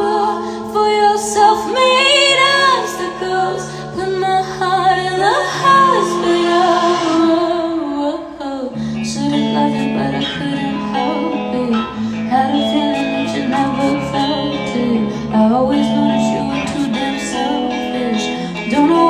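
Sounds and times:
guitar accompaniment: 0.0 - 19.0
woman singing slow song: 0.0 - 19.0.

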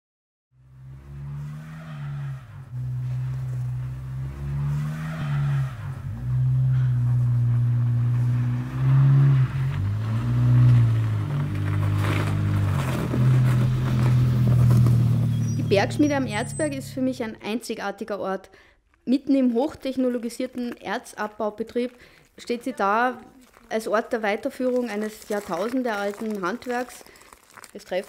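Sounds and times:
car engine revving: 0.6 - 17.4
tyres on snow: 0.7 - 17.5, 19.2 - 28.0.

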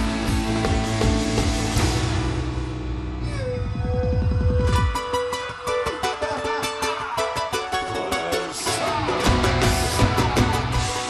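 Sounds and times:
band heavy bass: 0.0 - 11.0
charango plucked notes: 4.6 - 11.0.

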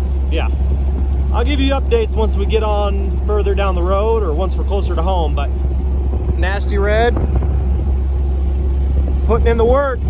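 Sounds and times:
road noise: 0.0 - 10.0
truck engine drone: 0.0 - 10.0.

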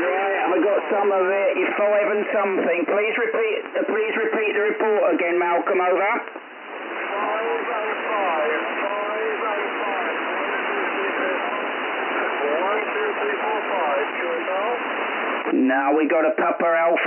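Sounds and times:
shortwave radio hiss and static: 0.0 - 17.0
faint radio voice: 6.9 - 14.8.

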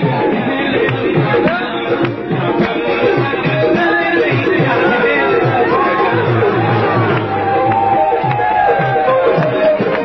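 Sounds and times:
man singing: 0.0 - 7.2
tabla rhythm: 0.0 - 10.0.

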